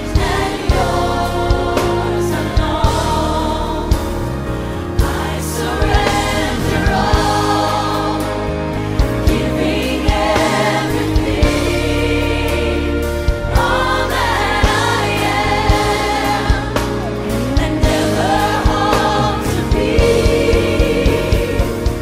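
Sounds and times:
gospel music with voices singing: 0:00.0 - 0:22.0.

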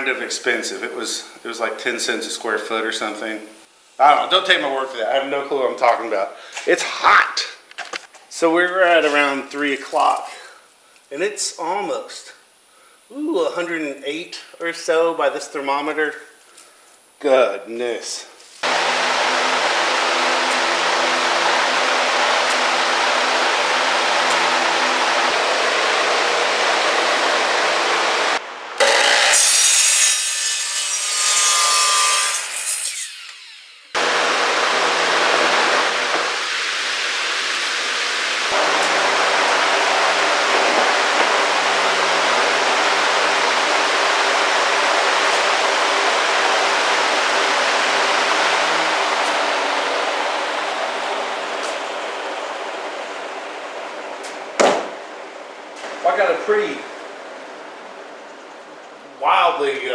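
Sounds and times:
power saw cutting wood: 0:18.6 - 0:55.0.

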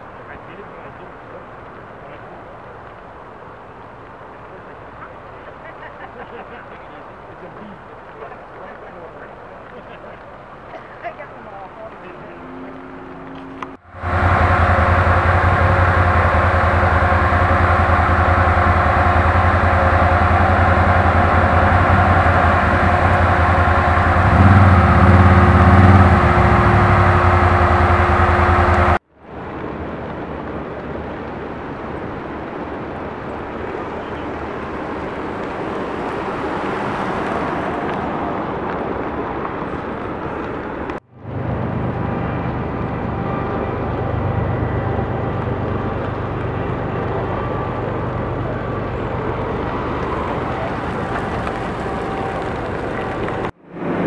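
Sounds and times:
motor engine running: 0:12.5 - 0:29.0.

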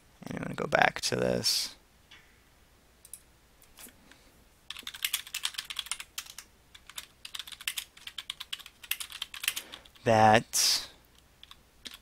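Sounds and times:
fast typing on keyboard: 0:04.7 - 0:10.0, 0:11.4 - 0:12.0.

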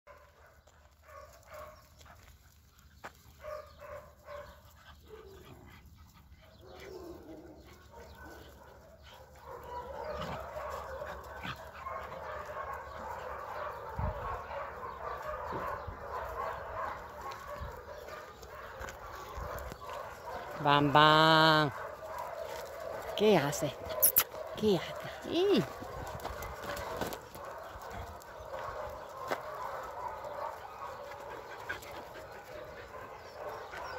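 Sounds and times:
dogs barking and yipping: 0:00.1 - 0:33.9.

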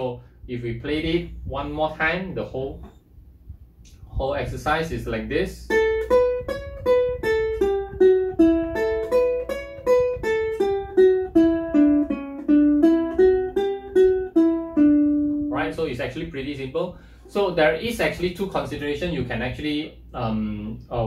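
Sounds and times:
ukulele notes picked: 0:05.6 - 0:15.9.

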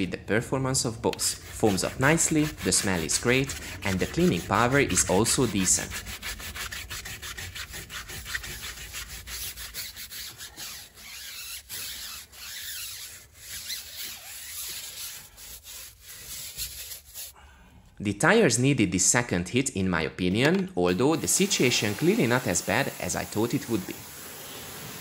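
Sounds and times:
brush scrubbing wet tyre: 0:01.1 - 0:17.3.

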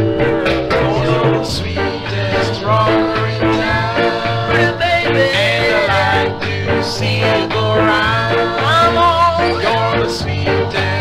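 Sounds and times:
ska record instrumental: 0:00.0 - 0:11.0.

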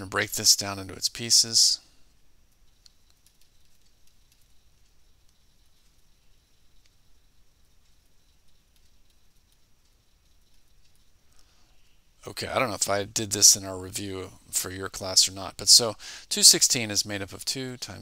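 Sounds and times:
faint room hiss: 0:00.0 - 0:18.0
light clicks: 0:02.5 - 0:12.0.

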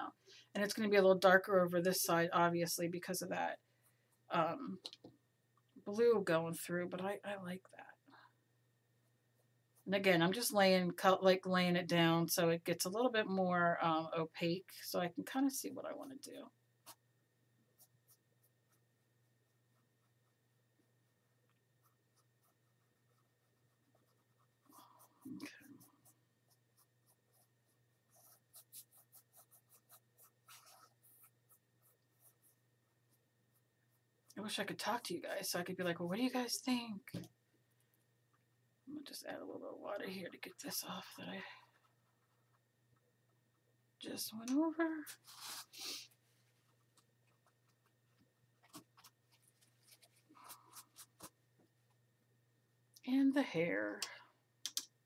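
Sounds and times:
low steady hum: 0:00.0 - 0:55.0
paintbrush strokes on canvas: 0:21.3 - 0:34.2, 0:45.1 - 0:51.4.

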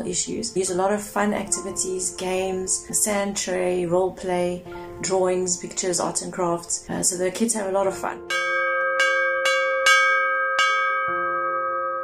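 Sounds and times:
brass bell ringing: 0:08.3 - 0:12.0.

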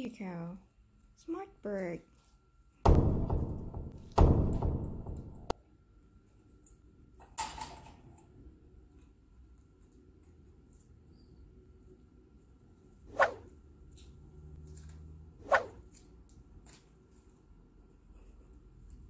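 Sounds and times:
heavy thunks ringing: 0:02.9 - 0:05.5.

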